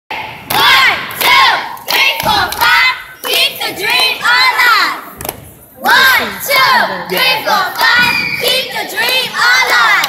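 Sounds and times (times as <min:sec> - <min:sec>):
girls shouting cheer in unison: 0:00.2 - 0:05.0, 0:05.8 - 0:10.0.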